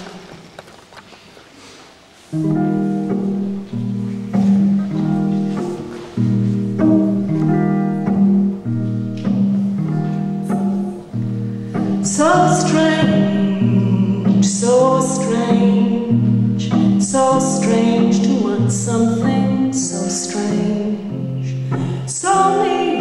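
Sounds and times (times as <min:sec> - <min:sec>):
acoustic guitar chords: 0:02.4 - 0:23.0.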